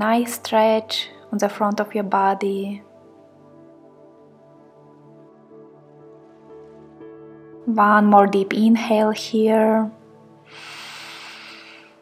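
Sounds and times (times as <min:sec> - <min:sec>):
soft background music: 0:00.0 - 0:12.0
woman inhaling deeply: 0:10.4 - 0:12.0.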